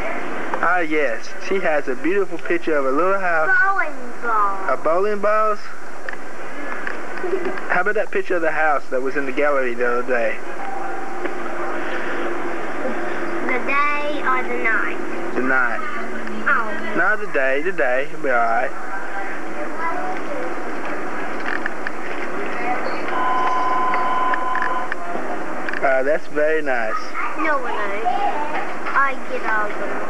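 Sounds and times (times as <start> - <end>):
tape hiss: 0.0 - 26.9
busy dining room din: 0.0 - 30.0
faint steady hum: 0.0 - 30.0
steady high whine: 0.0 - 30.0.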